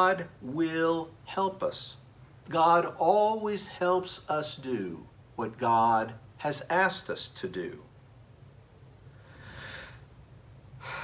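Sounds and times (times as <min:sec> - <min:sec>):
man speaking: 0:00.0 - 0:07.9
faint low hum: 0:00.0 - 0:11.0
man breathing softly: 0:09.1 - 0:10.1, 0:10.8 - 0:11.0.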